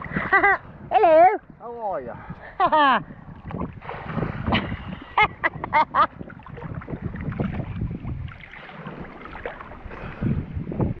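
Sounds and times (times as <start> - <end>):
water lapping and splashing: 0.0 - 11.0
wind buffeting microphone: 0.0 - 11.0.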